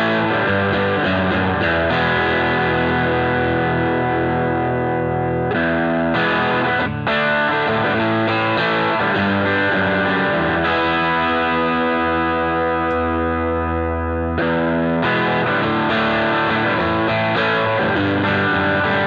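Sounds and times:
electric guitar chords: 0.0 - 19.0.

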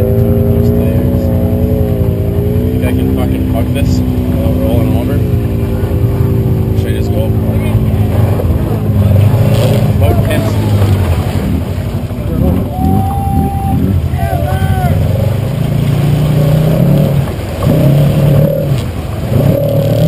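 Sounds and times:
quad bike engine revving: 0.0 - 20.0
person shouting: 12.7 - 15.2.

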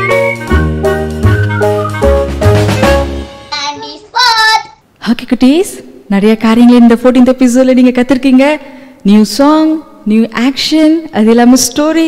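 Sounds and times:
cheerful jingle music: 0.0 - 3.5.

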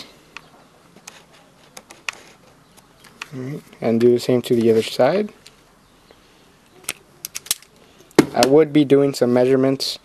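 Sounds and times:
cable handling clicks: 6.6 - 8.2.

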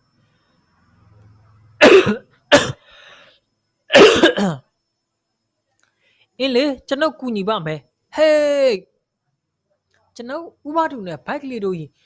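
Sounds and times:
person coughing loudly: 1.8 - 2.8, 3.9 - 4.6.

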